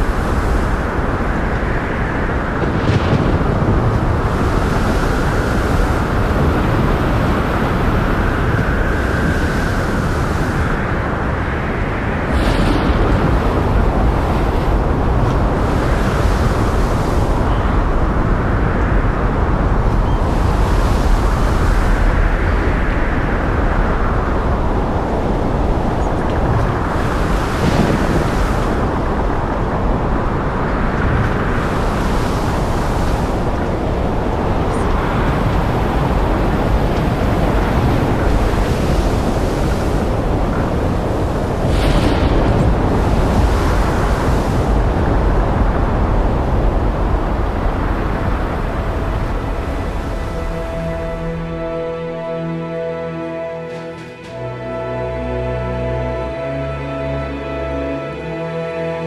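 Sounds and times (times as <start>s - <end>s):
waves breaking: 0.0s - 56.5s
deep rumble: 0.0s - 59.0s
wind rushing: 0.0s - 59.0s.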